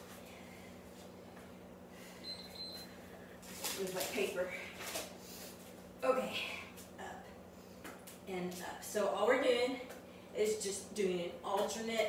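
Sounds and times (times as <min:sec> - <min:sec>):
steady low hum: 0:00.0 - 0:12.0
woman's voice: 0:03.7 - 0:04.8, 0:06.0 - 0:07.3, 0:08.3 - 0:12.0.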